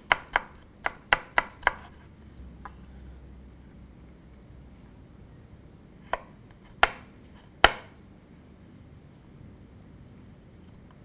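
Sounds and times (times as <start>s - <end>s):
knife chopping on wooden board: 0.0s - 2.0s, 6.1s - 7.9s.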